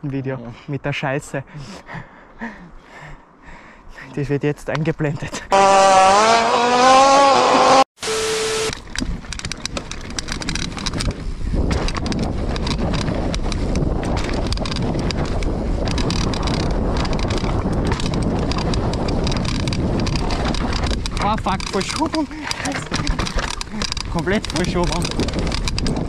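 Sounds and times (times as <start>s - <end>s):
bike rattles and knocks: 8.7s - 26.0s
wind on microphone: 8.7s - 26.0s
bike tyres rolling over dirt: 8.8s - 26.0s.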